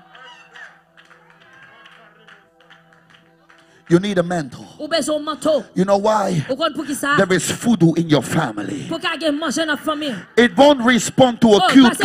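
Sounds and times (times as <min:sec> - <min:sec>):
person preaching: 0:03.9 - 0:12.0.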